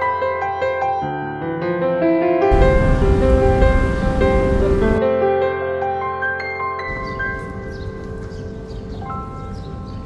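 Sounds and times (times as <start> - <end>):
low outdoor rumble: 2.5 - 5.0.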